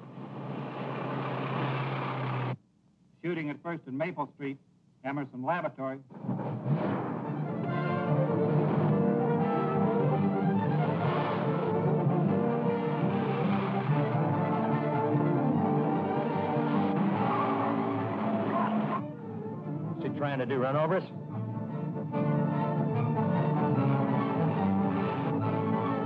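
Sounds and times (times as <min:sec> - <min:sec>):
orchestral film music: 0:06.7 - 0:26.0.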